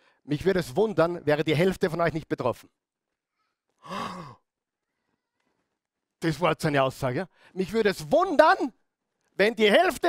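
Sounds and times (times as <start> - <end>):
man sighing: 3.8 - 4.4.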